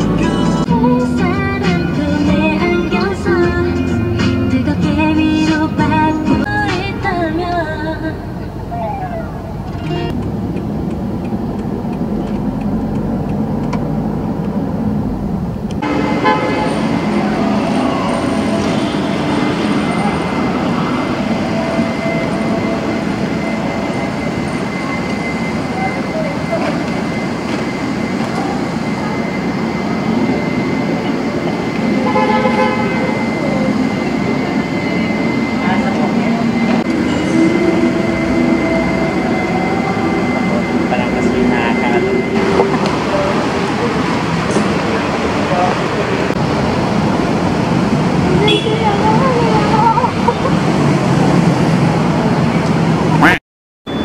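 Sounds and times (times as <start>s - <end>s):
steady high tone: 0.0s - 13.2s, 14.6s - 54.0s
traffic rumble: 0.0s - 54.0s
background voices: 15.2s - 51.3s
vehicle horn toot: 15.8s - 20.2s, 31.9s - 33.4s, 48.4s - 48.9s.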